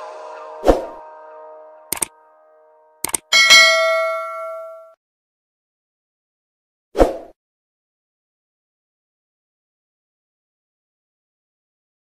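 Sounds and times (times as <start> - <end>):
mouse clicks: 1.9 - 2.1, 3.0 - 3.3
bell ding: 3.3 - 5.0.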